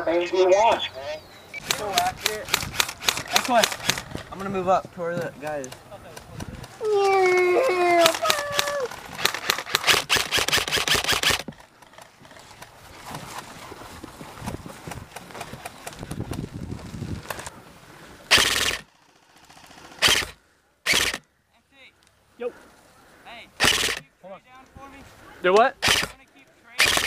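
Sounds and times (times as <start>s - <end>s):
airsoft rifles firing full-auto: 1.6s - 4.0s, 8.0s - 11.5s, 18.3s - 21.2s, 23.6s - 24.0s, 25.8s - 26.2s, 26.8s - 27.0s.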